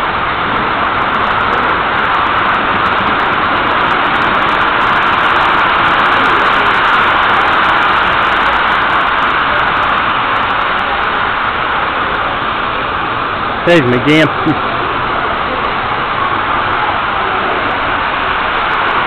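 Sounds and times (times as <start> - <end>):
model trains rolling on track: 0.0 - 19.0.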